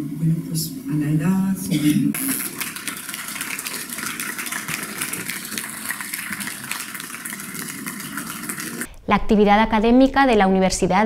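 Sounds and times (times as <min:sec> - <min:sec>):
audience clapping: 0:02.2 - 0:08.8.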